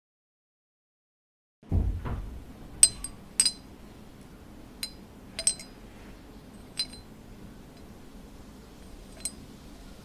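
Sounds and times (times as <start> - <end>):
cutlery clinking on plates: 2.8 - 3.6.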